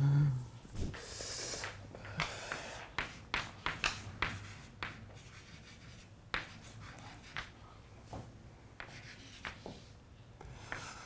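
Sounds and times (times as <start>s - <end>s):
chalk tapping and scratching: 0.9s - 11.0s.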